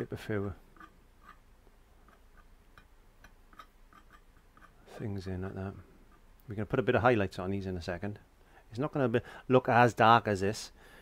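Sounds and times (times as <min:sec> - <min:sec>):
faint light ticking: 0:00.4 - 0:06.6.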